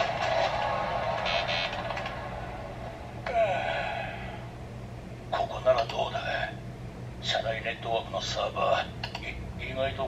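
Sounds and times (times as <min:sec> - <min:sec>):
electronic music: 0:00.0 - 0:03.2.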